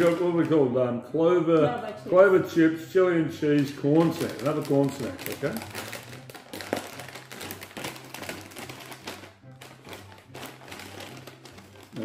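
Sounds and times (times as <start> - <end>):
plastic chip bag crinkling: 0.0 - 0.6, 3.6 - 12.0
faint background music: 0.0 - 12.0.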